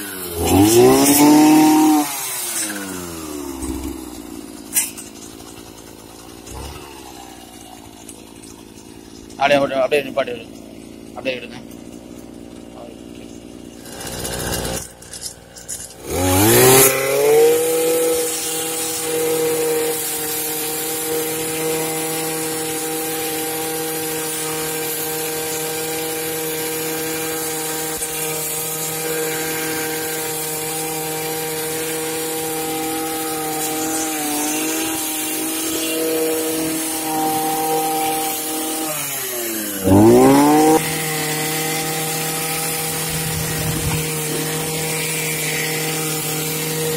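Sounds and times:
brush cutter engine revving: 0.0s - 46.9s
metal blade cutting weeds: 0.0s - 46.9s.

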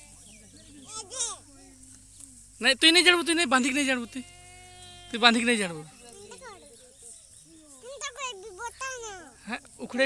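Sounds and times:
high-pitched wordless voice: 7.8s - 9.4s.

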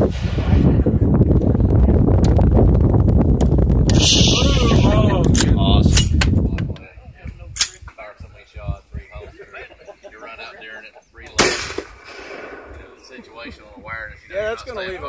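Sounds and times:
wind buffeting microphone: 0.0s - 9.6s, 11.2s - 15.0s.

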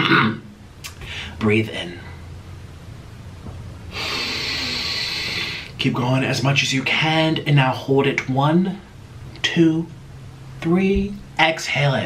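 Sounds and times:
man inhaling deeply: 1.0s - 1.4s, 3.9s - 5.8s.

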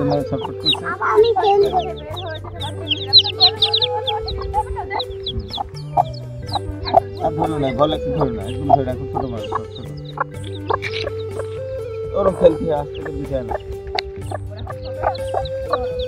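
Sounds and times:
background music with held notes: 0.0s - 16.0s
chicks peeping: 0.0s - 16.0s.

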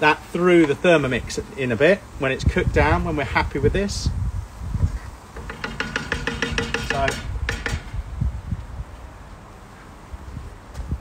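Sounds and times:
sharp knocks: 5.4s - 8.0s.

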